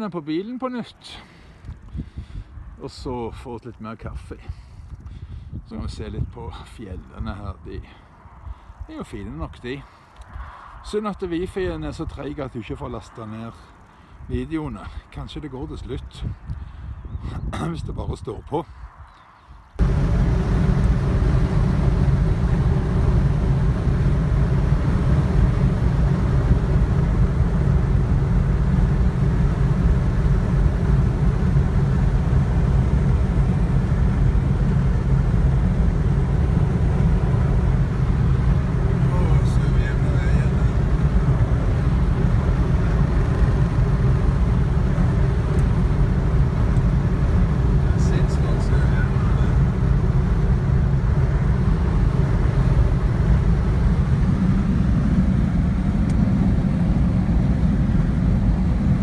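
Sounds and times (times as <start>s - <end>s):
road and engine noise in car: 0.0s - 17.0s, 18.9s - 59.0s.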